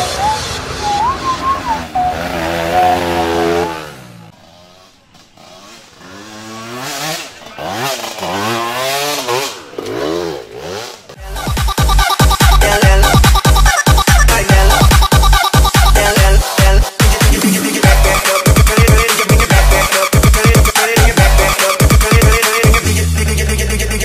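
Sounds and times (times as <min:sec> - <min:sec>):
electronic music: 0:00.0 - 0:02.5, 0:11.2 - 0:24.0
dirt bike engine revving: 0:00.0 - 0:16.4.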